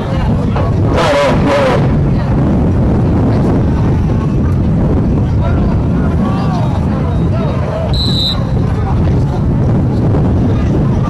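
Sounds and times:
wind rumbling on microphone: 0:00.0 - 0:11.0
referee's whistle blast: 0:08.0 - 0:08.5.

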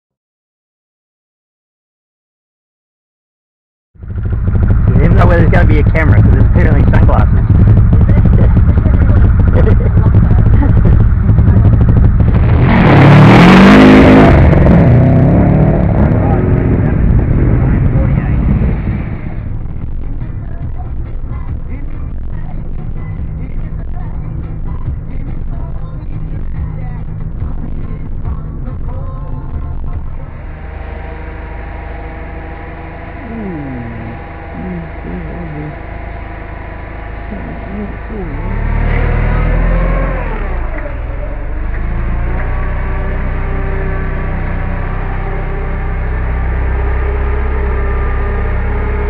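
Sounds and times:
car driving in traffic: 0:04.0 - 0:49.0
rally car engine revving: 0:04.0 - 0:49.0.

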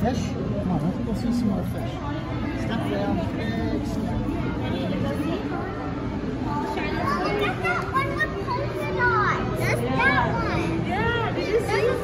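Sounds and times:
murmur of visitors: 0:00.0 - 0:12.0
children exclaiming and chattering: 0:01.9 - 0:12.0.

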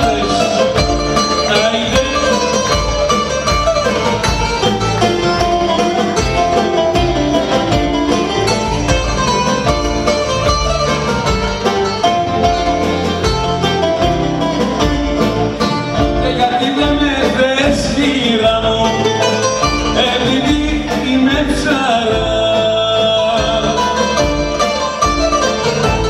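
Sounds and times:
man singing: 0:00.0 - 0:02.8, 0:16.0 - 0:24.5
bouzouki melody: 0:00.0 - 0:26.0
live dance band music: 0:00.0 - 0:26.0.

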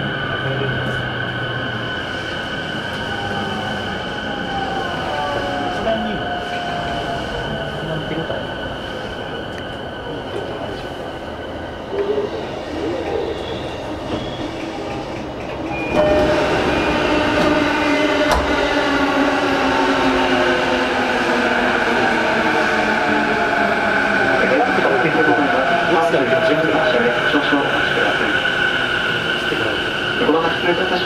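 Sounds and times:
train running rumble: 0:00.0 - 0:31.0.

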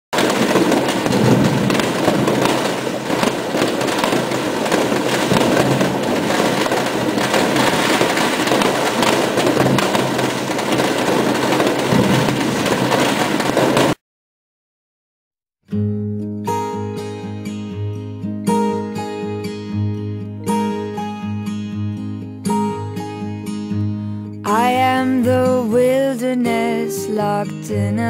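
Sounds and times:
fireworks bangs and crackles: 0:00.1 - 0:14.0.

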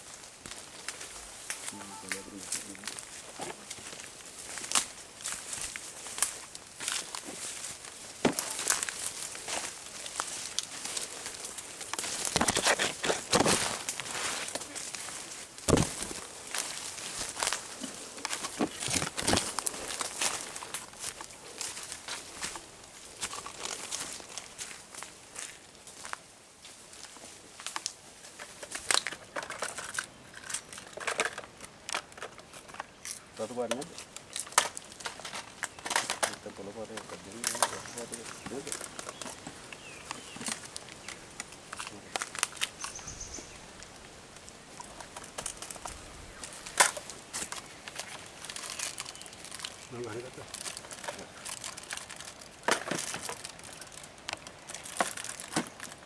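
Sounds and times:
dry leaves rustling: 0:00.0 - 0:56.0
footsteps through undergrowth: 0:00.0 - 0:56.0
twigs snapping: 0:00.4 - 0:25.6, 0:27.6 - 0:43.1, 0:43.7 - 0:56.0.

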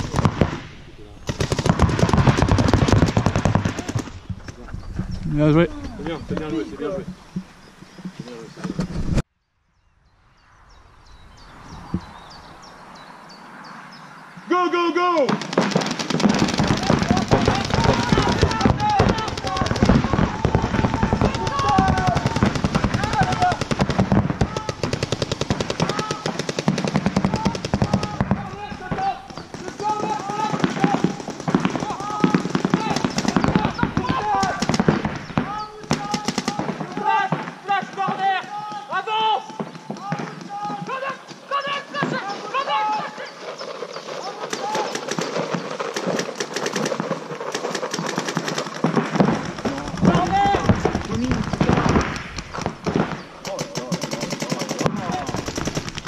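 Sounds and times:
paintball markers firing: 0:15.3 - 0:36.7, 0:44.4 - 0:56.0.

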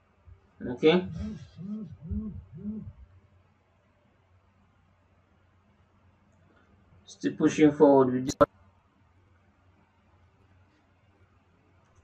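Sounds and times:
man humming: 0:00.8 - 0:03.1.

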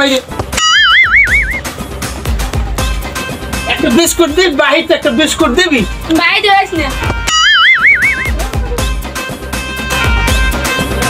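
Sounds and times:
comic warbling sound effect: 0:00.6 - 0:01.7, 0:07.3 - 0:08.4
deep musical beat: 0:00.6 - 0:03.0, 0:06.7 - 0:09.2.

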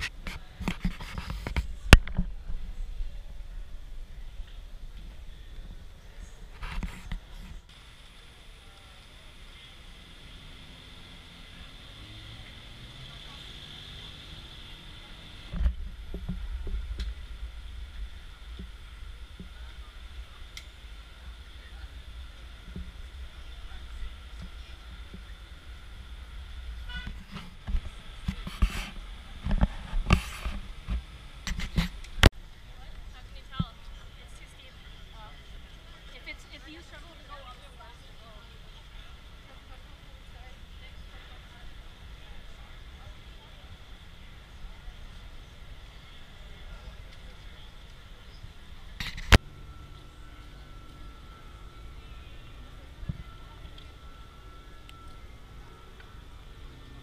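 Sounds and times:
low street rumble: 0:00.0 - 0:57.0.

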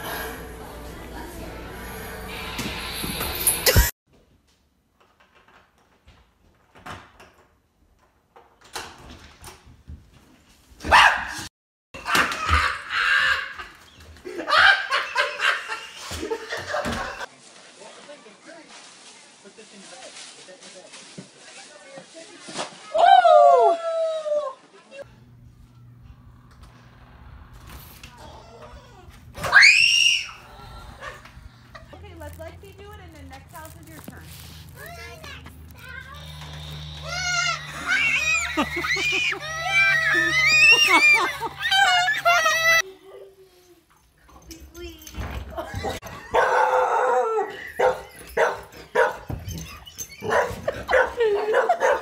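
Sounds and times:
dog barking: 0:10.9 - 0:11.5, 0:46.3 - 0:49.3, 0:50.2 - 0:52.0
child screaming shrilly: 0:29.4 - 0:30.5, 0:35.9 - 0:42.8.

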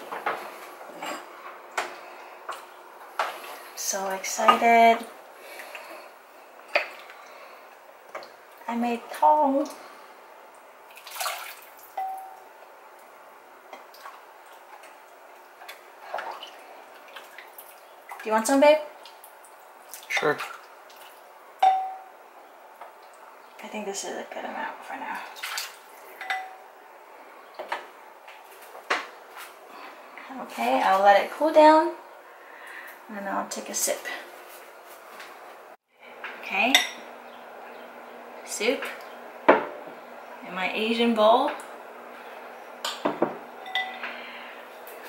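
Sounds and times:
ladle clinking on porcelain bowl: 0:12.0 - 0:12.4, 0:21.6 - 0:22.1, 0:26.2 - 0:26.6, 0:42.9 - 0:44.0.

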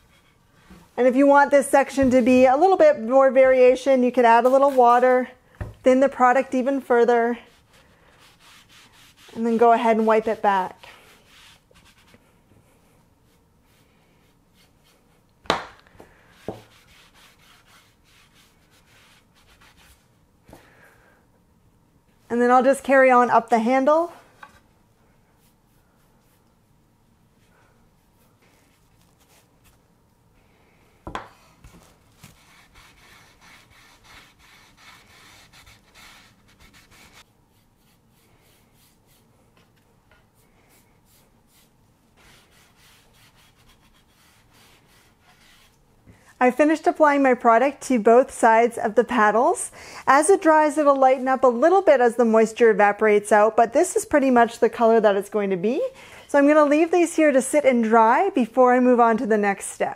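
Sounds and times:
paintbrush stroking wood: 0:07.4 - 0:12.2, 0:32.2 - 0:39.3
cloth rag rubbing wood: 0:07.4 - 0:12.3, 0:16.4 - 0:20.0, 0:32.2 - 0:39.3
rag scrubbing wood: 0:32.3 - 0:37.2.

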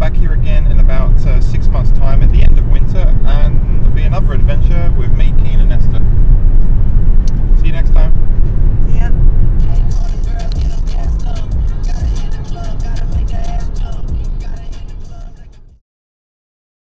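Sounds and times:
car road noise rumble: 0:00.0 - 0:15.8
music: 0:09.6 - 0:15.8.

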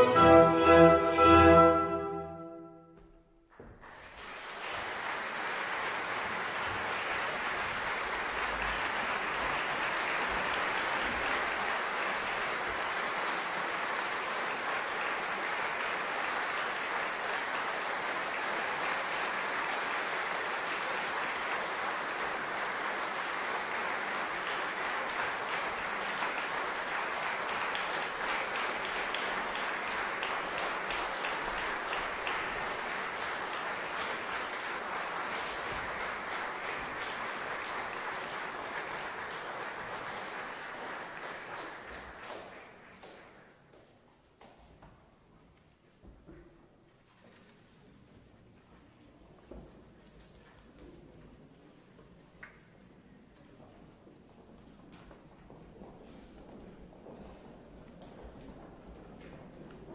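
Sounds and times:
audience applauding: 0:03.5 - 0:43.6.

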